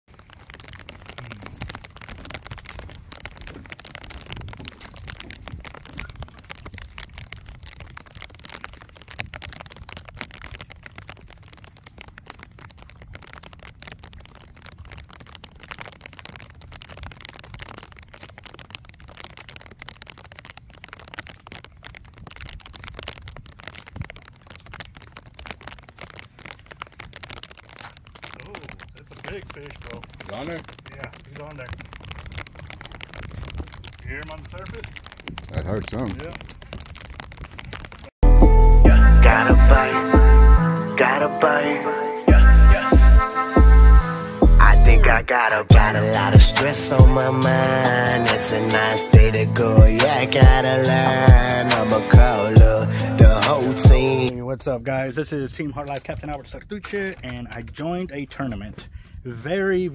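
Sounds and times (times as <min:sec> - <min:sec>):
wind on microphone: 0:31.8 - 0:38.1.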